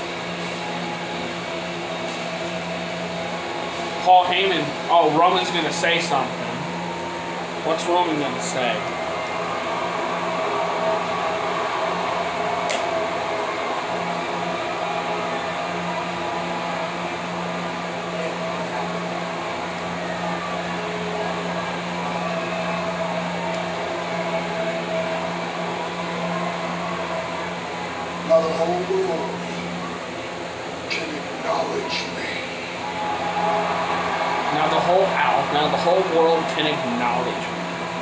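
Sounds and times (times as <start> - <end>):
machine hum: 0.0 - 38.0.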